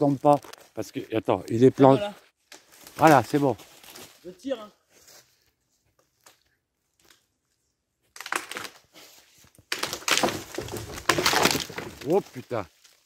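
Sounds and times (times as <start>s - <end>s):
branch landing in dry leaves: 2.5s - 4.2s, 9.4s - 13.0s
tree branch cracking and crashing: 8.1s - 8.8s, 9.6s - 13.0s.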